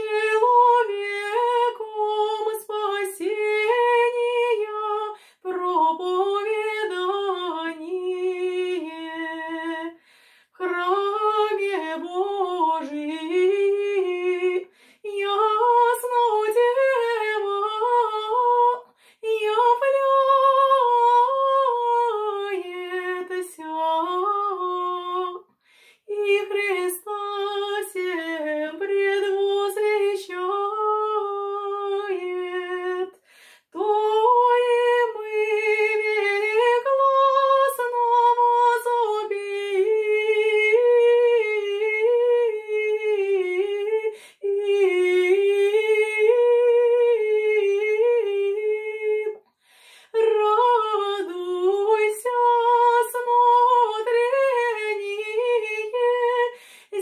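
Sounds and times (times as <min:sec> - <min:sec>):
woman singing chant: 0:00.0 - 0:10.0, 0:10.6 - 0:49.4, 0:50.1 - 0:57.0.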